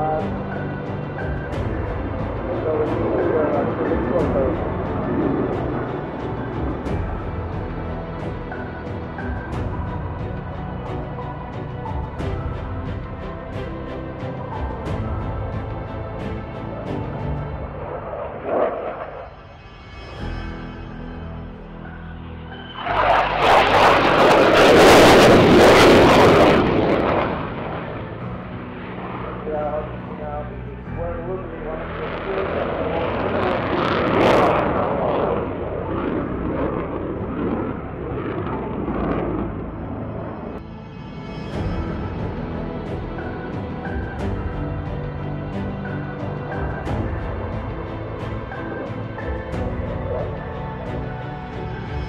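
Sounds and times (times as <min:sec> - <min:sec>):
jet engines roaring: 0:00.0 - 0:12.3, 0:16.2 - 0:19.8, 0:21.8 - 0:52.0
background music: 0:00.0 - 0:52.0.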